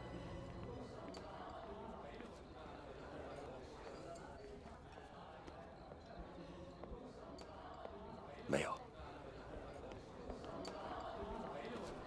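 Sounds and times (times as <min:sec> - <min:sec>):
faint background murmur: 0:00.0 - 0:12.0.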